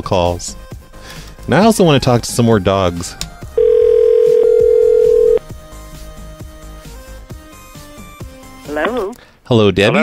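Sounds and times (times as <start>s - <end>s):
telephone ringback tone: 3.6s - 5.4s
background music with plucked beat: 4.3s - 9.2s.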